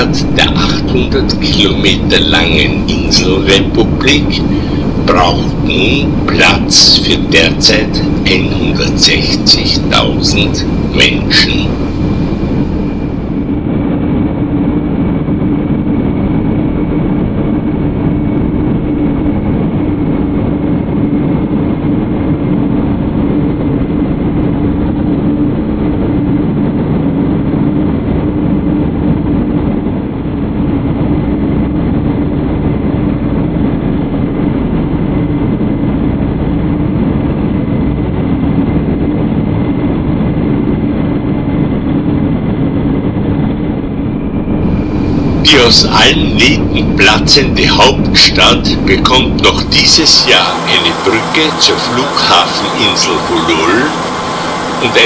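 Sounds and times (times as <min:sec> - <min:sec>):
aircraft engines droning: 0:00.0 - 0:55.0.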